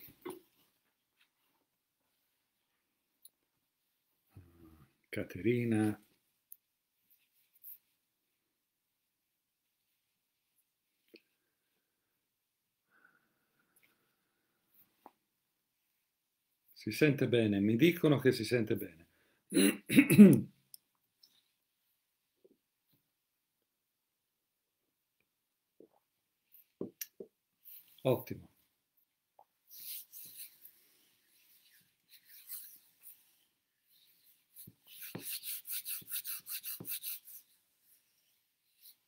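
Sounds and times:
man clearing his throat: 19.5s - 20.5s
quick scratching strokes: 29.7s - 39.0s.

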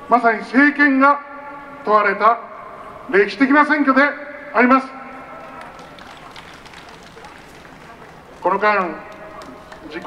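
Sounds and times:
low city hum: 0.0s - 10.0s.

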